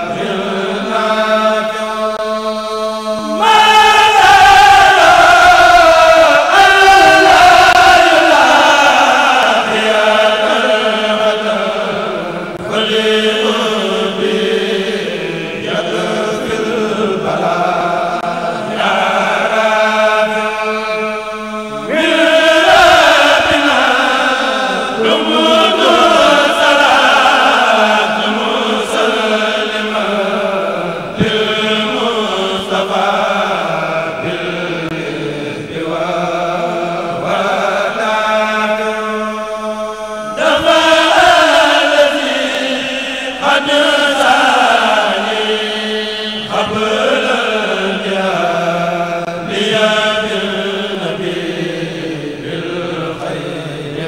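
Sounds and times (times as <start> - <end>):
men chanting through loudspeakers: 0.0 - 54.0.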